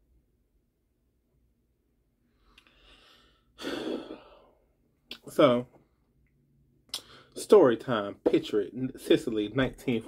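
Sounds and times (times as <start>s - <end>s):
man sighing: 2.6s - 4.6s.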